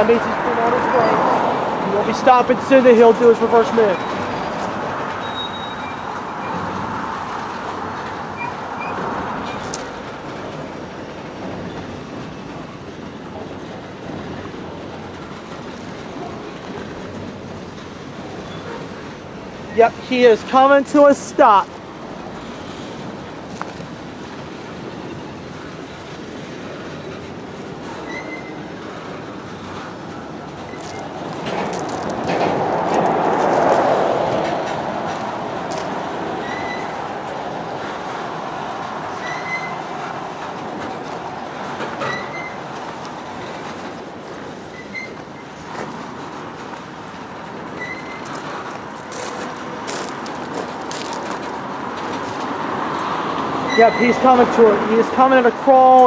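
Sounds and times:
train wheels rumbling and clattering: 0.0s - 56.0s
short high wheel squeals: 5.2s - 6.6s, 8.4s - 9.6s, 18.4s - 19.0s, 28.0s - 28.6s, 36.4s - 37.0s, 39.2s - 39.8s, 42.0s - 42.6s, 44.7s - 45.2s, 47.8s - 48.3s.

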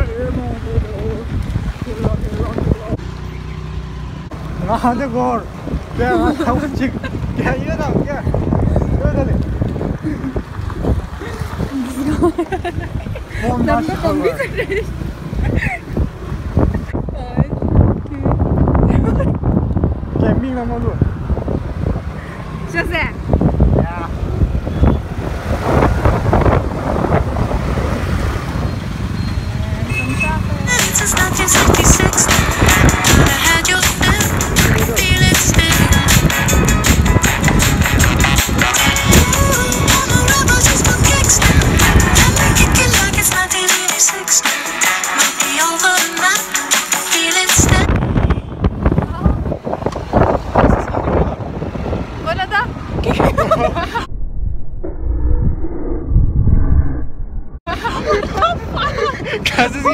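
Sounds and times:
wind buffeting microphone: 0.0s - 3.2s, 5.3s - 43.4s, 47.6s - 59.9s
voices: 29.5s - 36.0s
background music: 30.8s - 47.8s
person's voice: 33.6s - 35.8s.

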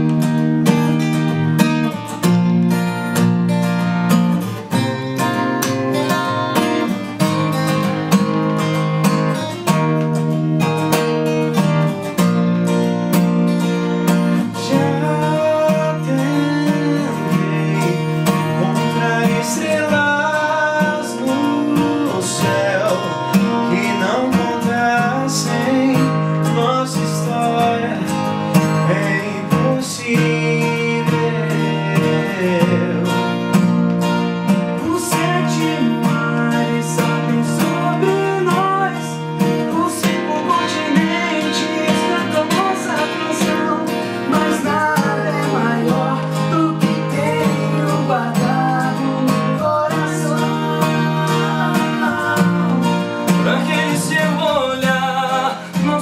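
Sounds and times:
acoustic guitars strumming: 0.0s - 56.0s
man singing: 4.4s - 12.3s, 13.9s - 56.0s.

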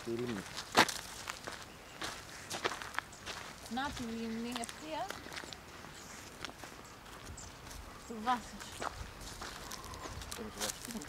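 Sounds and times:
footsteps on stony dirt: 0.0s - 11.0s.

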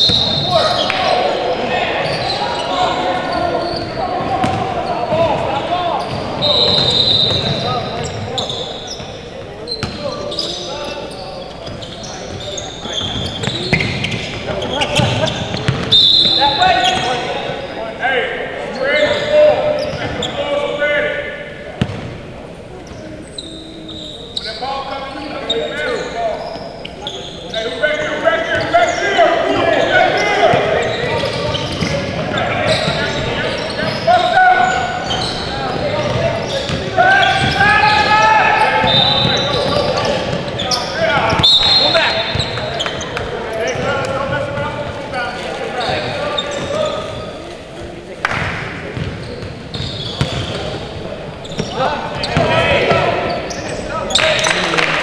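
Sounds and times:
voices calling out: 0.0s - 55.0s.

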